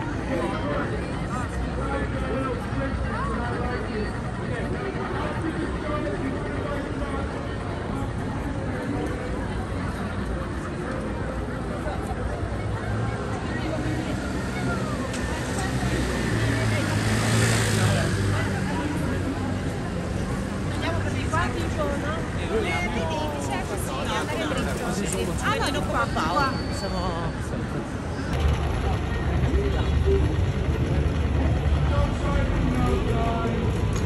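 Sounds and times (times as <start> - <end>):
street crowd chatter: 0.0 - 34.0
voices of passers-by: 0.0 - 34.0.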